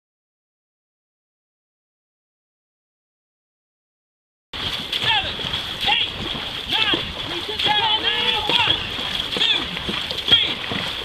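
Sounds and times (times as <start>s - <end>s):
paddles splashing through water: 4.6s - 11.0s.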